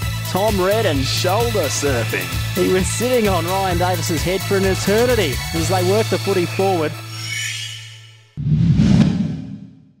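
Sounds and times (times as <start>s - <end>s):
whoosh: 8.4s - 10.0s.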